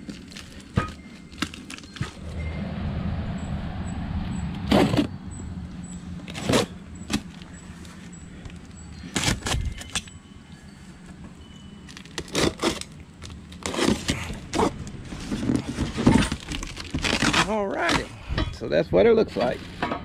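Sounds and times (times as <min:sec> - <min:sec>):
low rumble: 0:02.0 - 0:08.8
cardboard scraping and rustling: 0:06.2 - 0:08.0, 0:12.0 - 0:18.1.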